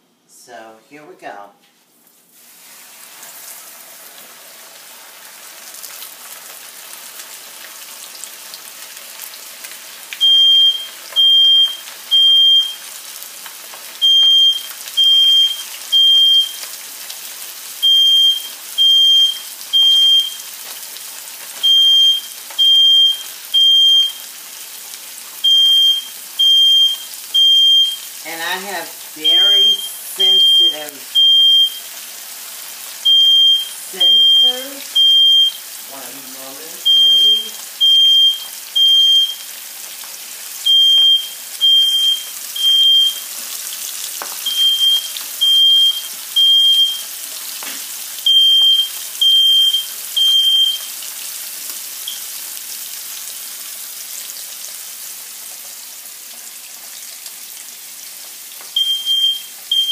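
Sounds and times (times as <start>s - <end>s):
fish sizzling in hot oil: 2.2s - 59.9s
smoke alarm beeping: 10.2s - 12.9s, 14.0s - 16.7s, 17.8s - 20.5s, 21.6s - 24.3s, 25.4s - 32.0s, 33.0s - 35.7s, 36.8s - 39.6s, 40.6s - 43.4s, 44.4s - 47.2s, 48.2s - 51.0s, 52.0s - 52.3s, 58.7s - 59.9s.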